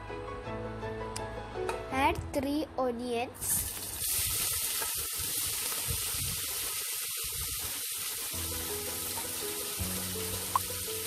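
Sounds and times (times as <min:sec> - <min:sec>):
onions sizzling in hot oil: 0:03.4 - 0:11.0.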